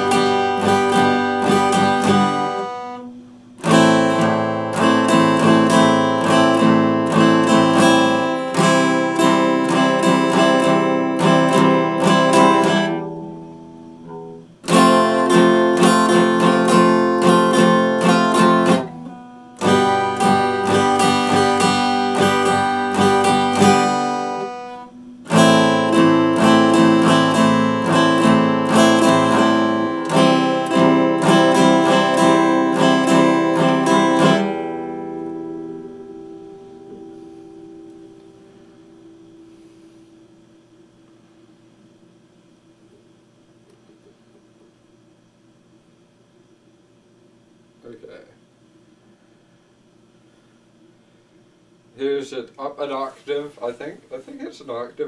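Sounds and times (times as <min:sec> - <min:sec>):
acoustic guitar strumming chords: 0:00.0 - 0:44.7.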